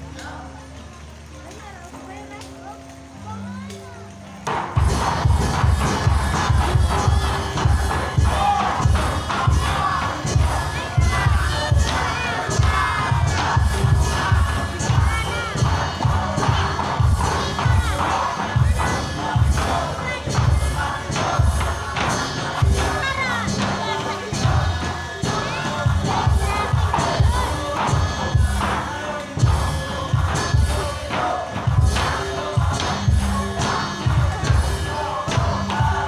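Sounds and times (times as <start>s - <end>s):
crowd cheering and shouting: 3.1s - 36.0s
quick steady drumbeat: 4.5s - 36.0s.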